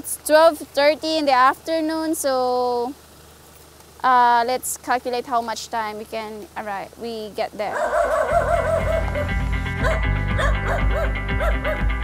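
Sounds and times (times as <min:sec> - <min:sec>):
puppy yelping: 0:07.7 - 0:11.9
background music: 0:08.1 - 0:12.0.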